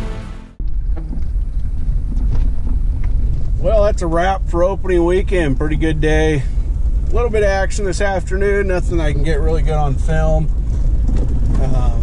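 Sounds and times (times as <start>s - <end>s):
vehicle engine and tyres rumbling: 0.0s - 12.0s.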